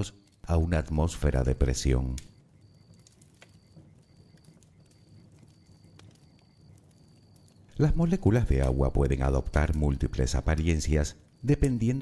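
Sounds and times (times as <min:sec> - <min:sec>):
campfire crackling: 0:00.0 - 0:12.0.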